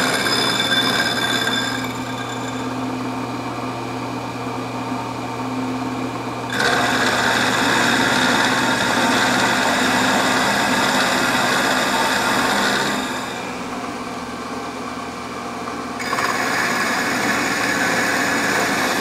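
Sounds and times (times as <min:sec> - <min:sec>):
high-pitched metal cutting: 0:00.0 - 0:02.8, 0:06.5 - 0:13.6, 0:16.0 - 0:19.0
milling machine motor hum: 0:00.0 - 0:19.0.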